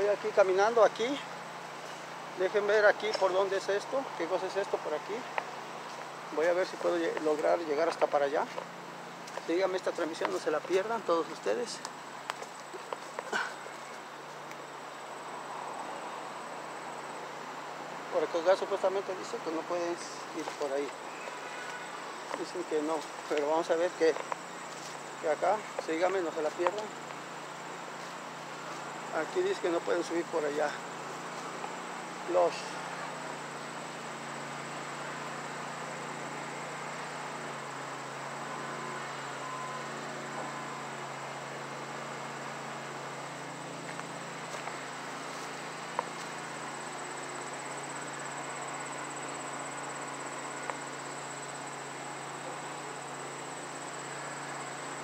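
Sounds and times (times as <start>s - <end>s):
faint outdoor background noise: 0.0s - 55.0s
rustling through dry undergrowth: 1.0s - 4.4s, 20.2s - 29.2s, 43.7s - 48.4s
high-pitched insect drone: 9.6s - 55.0s.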